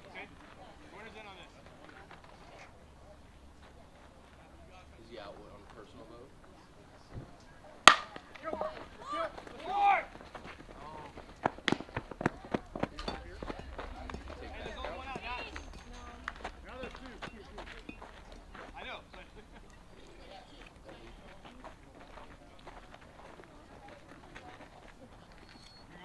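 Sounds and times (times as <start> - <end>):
bat hitting ball crack: 7.8 - 8.7
people shouting: 9.0 - 10.1.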